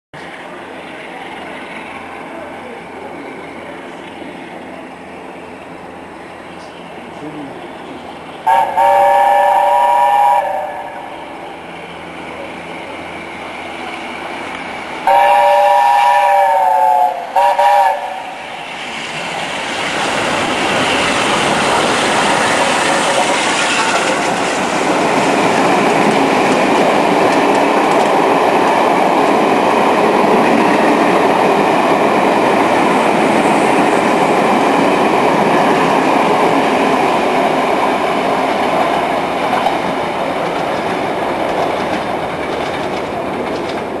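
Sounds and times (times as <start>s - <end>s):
steam train passing: 0.2s - 44.0s
steam locomotive whistle: 8.4s - 11.2s, 15.0s - 18.6s.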